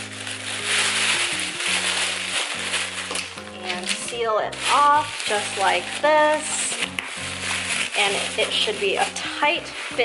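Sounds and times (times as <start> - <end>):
background music: 0.0 - 10.0
tissue paper rustling: 0.0 - 10.0.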